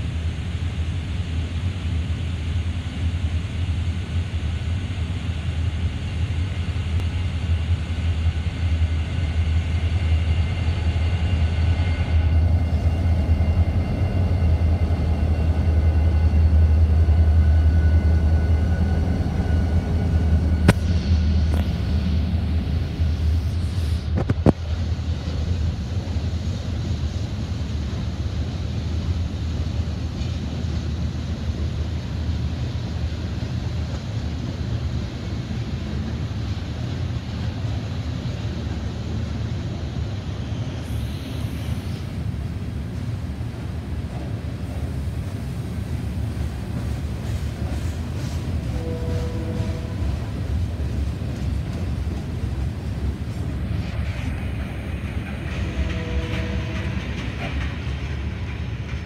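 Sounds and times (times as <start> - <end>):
diesel locomotives rumbling: 0.0 - 59.0.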